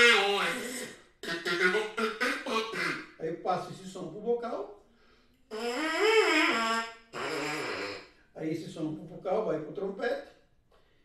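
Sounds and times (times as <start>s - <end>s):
trumpet mouthpiece buzzing: 5.5s - 8.1s.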